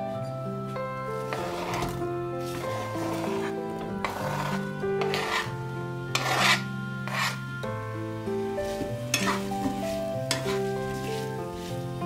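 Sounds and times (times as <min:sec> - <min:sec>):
background music: 0:00.0 - 0:12.0
spatula scraping cutting board: 0:01.2 - 0:07.5, 0:08.7 - 0:11.4.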